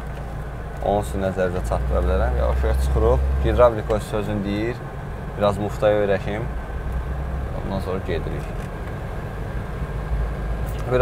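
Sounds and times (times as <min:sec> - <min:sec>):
car engine droning: 0:00.0 - 0:11.0
road noise: 0:00.0 - 0:11.0.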